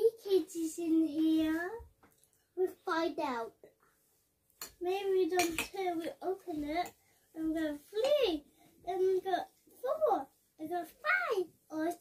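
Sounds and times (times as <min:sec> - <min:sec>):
child sing-song voice: 0:04.9 - 0:12.0
cutlery clinking on ceramic bowl: 0:05.4 - 0:05.8.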